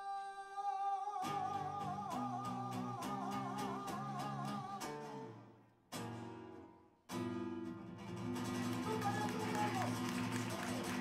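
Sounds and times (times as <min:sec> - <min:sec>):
acoustic guitar strumming: 0:01.2 - 0:11.0.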